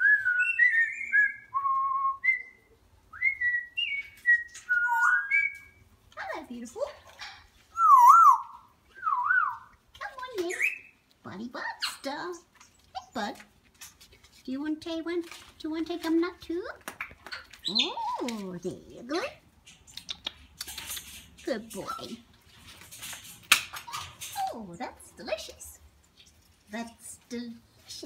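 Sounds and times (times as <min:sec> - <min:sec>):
parrot whistling: 0:00.0 - 0:05.8, 0:07.8 - 0:09.7.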